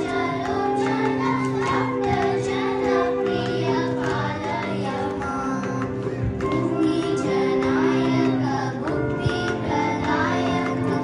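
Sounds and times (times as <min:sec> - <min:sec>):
girls singing in unison: 0:00.0 - 0:11.0.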